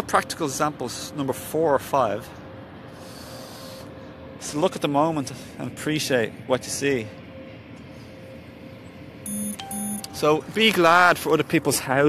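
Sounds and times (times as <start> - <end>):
faint steady hum: 0.0 - 12.0
steady background rumble: 0.0 - 12.0.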